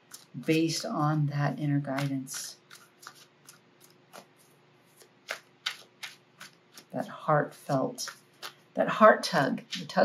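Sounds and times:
cards clicking and flicking: 0:01.9 - 0:07.0, 0:08.0 - 0:08.6.

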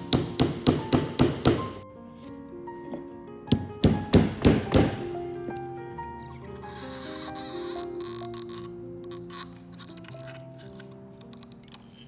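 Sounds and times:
small hammer tapping wood: 0:00.1 - 0:01.8, 0:03.5 - 0:05.0.

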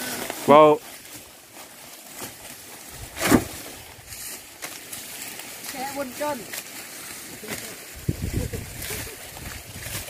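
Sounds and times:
dry stalks and leaves rustling: 0:00.0 - 0:10.0
short loud crash: 0:03.2 - 0:03.6.

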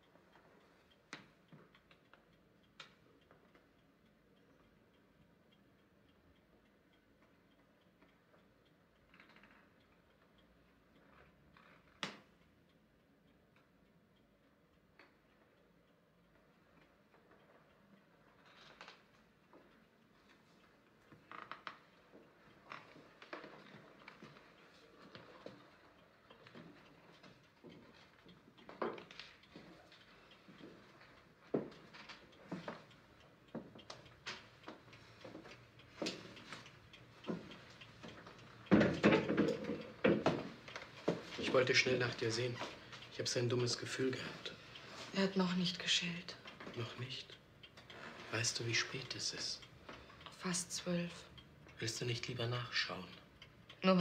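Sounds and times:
small knocks and clicks: 0:07.2 - 0:12.4, 0:16.3 - 0:43.6.

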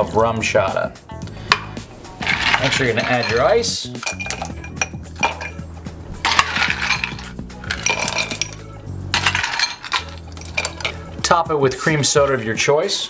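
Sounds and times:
ice cubes clinking in glass: 0:02.2 - 0:05.6, 0:06.2 - 0:11.1.

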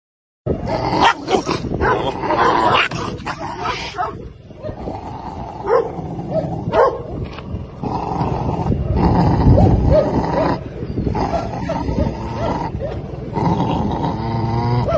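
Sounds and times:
puppy growling: 0:00.5 - 0:07.0, 0:07.7 - 0:14.9.

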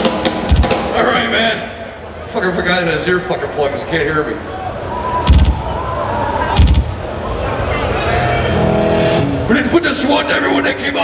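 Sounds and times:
heavy drum hits: 0:00.0 - 0:01.1, 0:05.3 - 0:05.7, 0:06.6 - 0:07.1
live crowd noise: 0:00.0 - 0:11.0.

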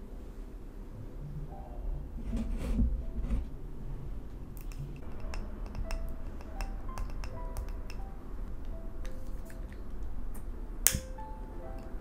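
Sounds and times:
fingernails tapping glass jar: 0:04.6 - 0:08.1
lighter click: 0:10.9 - 0:11.2.

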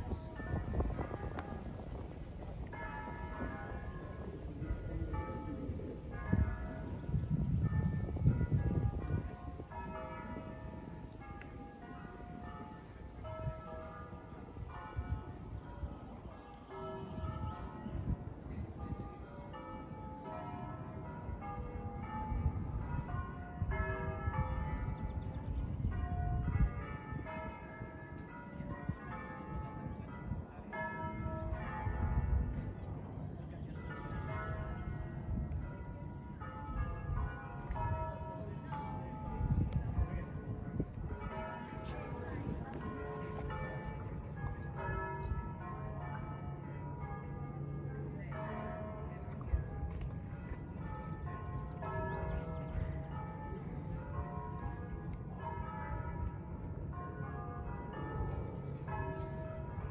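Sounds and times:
distant church bells pealing: 0:00.0 - 0:59.9.

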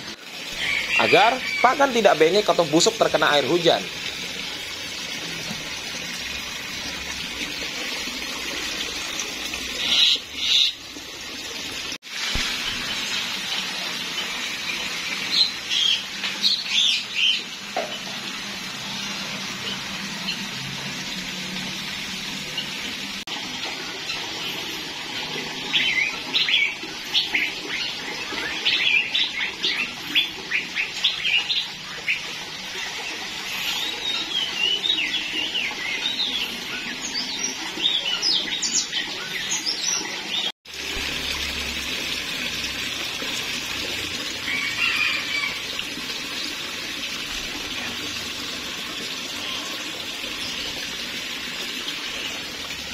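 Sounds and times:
birds chirping: 0:00.0 - 0:03.9, 0:08.5 - 0:11.0, 0:14.0 - 0:18.2, 0:25.5 - 0:40.5
running water: 0:00.0 - 0:52.9.

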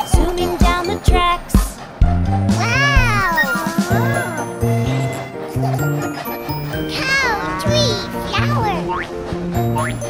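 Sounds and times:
children's song music: 0:00.0 - 0:10.0
cartoon child voice exclaiming: 0:02.6 - 0:04.5, 0:06.8 - 0:09.0.

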